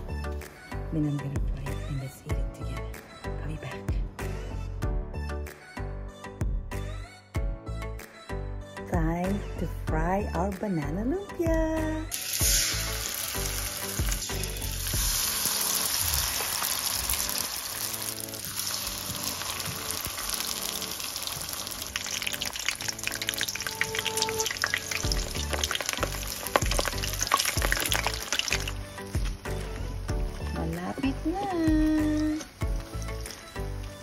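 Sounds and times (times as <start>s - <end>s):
spring rolls sizzling in oil: 12.1s - 29.4s.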